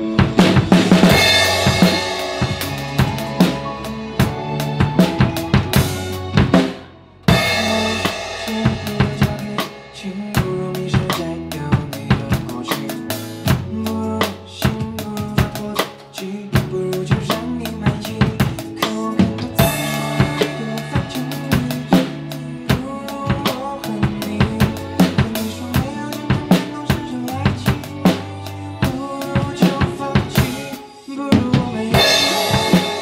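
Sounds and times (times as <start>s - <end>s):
acoustic drum kit playing: 0.0s - 33.0s
pop backing track: 0.0s - 33.0s.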